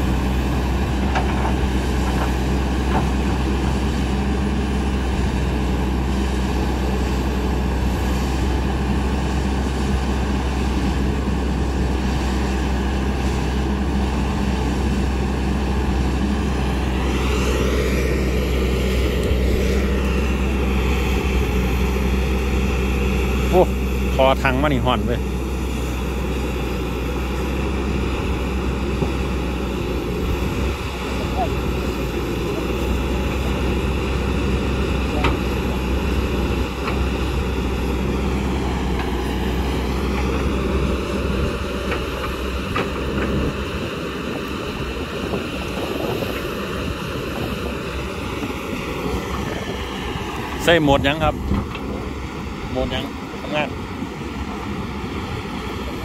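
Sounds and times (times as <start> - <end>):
excavator diesel engine droning: 0.0 - 56.0
hydraulic whine: 0.0 - 56.0.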